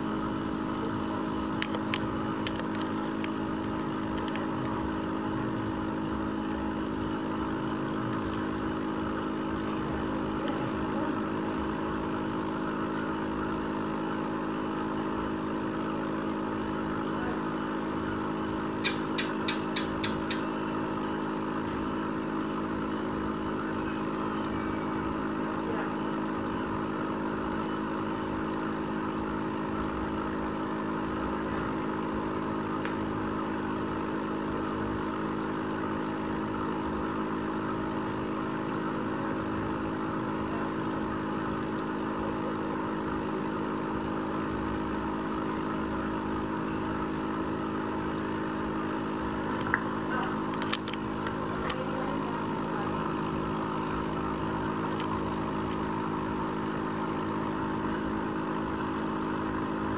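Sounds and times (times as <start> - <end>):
aquarium pump hum: 0.0 - 59.9.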